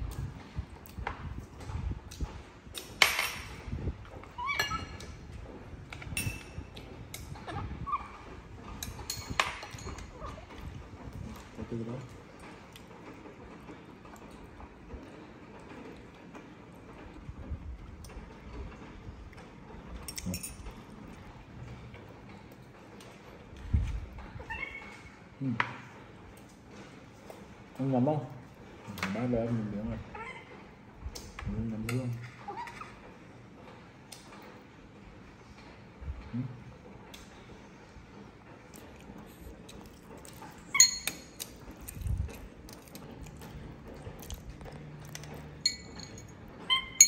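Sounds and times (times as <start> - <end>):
utensils clinking on ceramic bowls: 20.1 - 20.9, 40.3 - 41.6, 45.1 - 47.0
baby monkey squeaking: 46.7 - 47.0.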